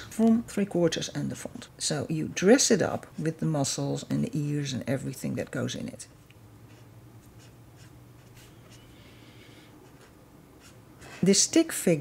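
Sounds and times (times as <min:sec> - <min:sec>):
marker drawing on paper: 0:06.6 - 0:11.4.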